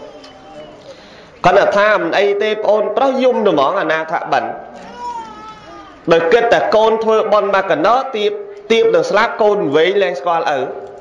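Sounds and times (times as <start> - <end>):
man speaking: 1.4 - 4.6, 6.0 - 10.8
high drawn-out cry: 4.7 - 6.1.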